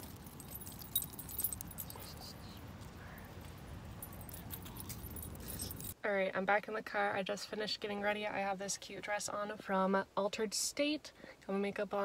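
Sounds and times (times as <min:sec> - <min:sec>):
small metal items jingling: 0:00.0 - 0:06.0.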